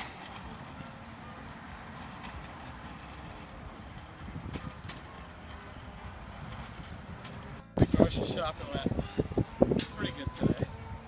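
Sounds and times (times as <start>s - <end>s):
cart clattering: 0.0s - 8.8s
shopping cart rattling on asphalt: 0.0s - 8.8s.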